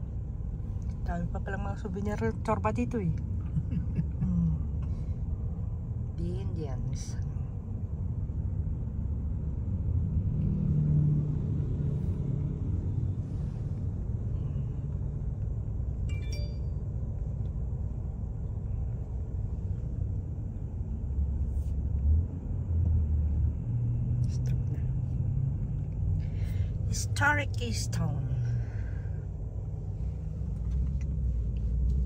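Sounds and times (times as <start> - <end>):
car engine and tyres rumbling: 0.0 - 32.0.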